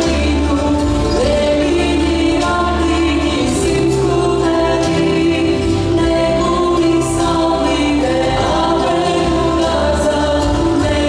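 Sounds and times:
choir singing: 0.0 - 11.0
folk dance instrumental music: 0.0 - 11.0.

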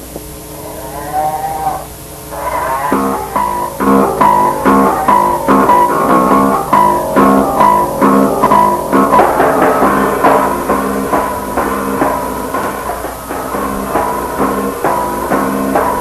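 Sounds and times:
noisy guitar chord strumming: 0.0 - 16.0
guitar sliding note: 0.4 - 16.0.

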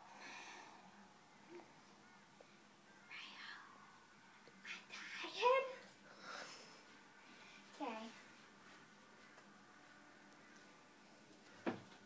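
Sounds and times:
faint whispered voice: 0.0 - 6.0.

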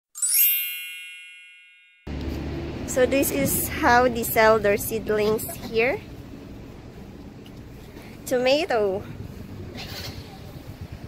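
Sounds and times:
bright chime ringing: 0.1 - 2.1.

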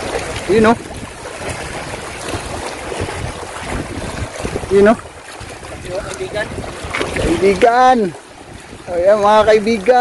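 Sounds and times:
waves washing against rocks: 0.0 - 10.0
wind on microphone: 0.0 - 10.0.

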